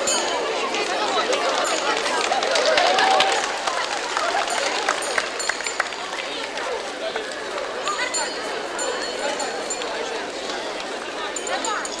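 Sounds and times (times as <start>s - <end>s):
crowd of adults and children chattering: 0.0s - 12.0s.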